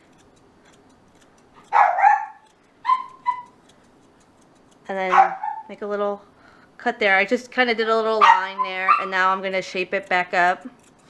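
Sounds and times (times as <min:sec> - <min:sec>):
dog barking: 0:01.6 - 0:03.5, 0:05.1 - 0:05.7, 0:08.2 - 0:09.2
dog yipping: 0:01.6 - 0:03.6, 0:05.1 - 0:05.7, 0:08.2 - 0:09.2.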